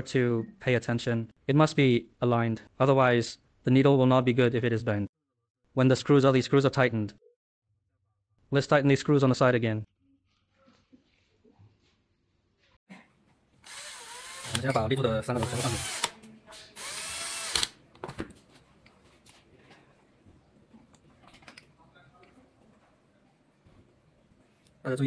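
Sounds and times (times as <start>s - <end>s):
power drill driving screws: 13.6s - 16.2s, 16.8s - 17.8s.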